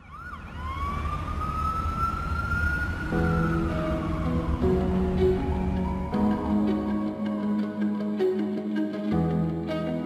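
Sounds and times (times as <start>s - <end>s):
siren-like wailing tone: 0.0s - 7.2s
music with sustained chords: 0.0s - 10.0s.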